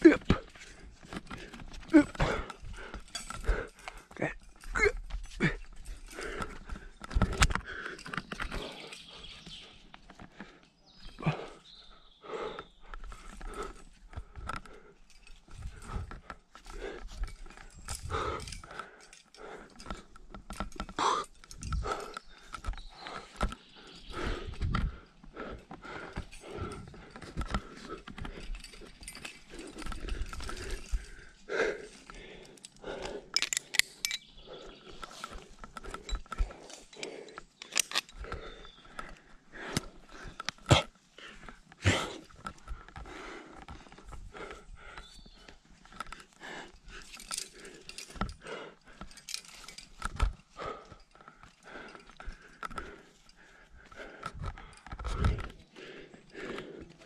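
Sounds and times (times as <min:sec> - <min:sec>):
heavy breathing: 0:00.0 - 0:57.0.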